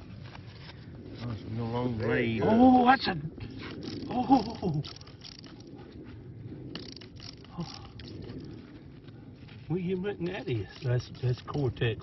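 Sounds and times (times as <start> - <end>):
small crackles: 3.4 - 12.0.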